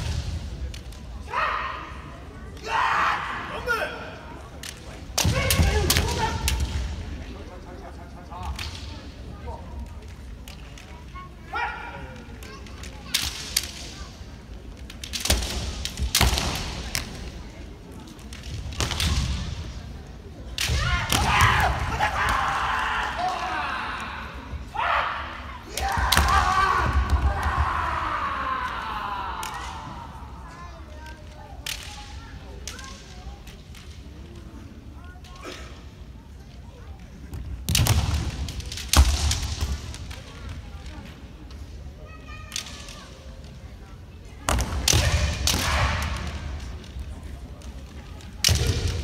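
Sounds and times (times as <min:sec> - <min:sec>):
faint shouting voices echoing: 0:00.0 - 0:07.5, 0:11.0 - 0:13.9, 0:20.5 - 0:33.5, 0:44.4 - 0:49.0
gym hall background noise: 0:00.0 - 0:49.0
bamboo swords clacking: 0:12.2 - 0:24.1, 0:31.1 - 0:34.6, 0:37.7 - 0:41.7, 0:44.5 - 0:49.0
bamboo swords striking: 0:15.0 - 0:17.3, 0:44.5 - 0:46.7.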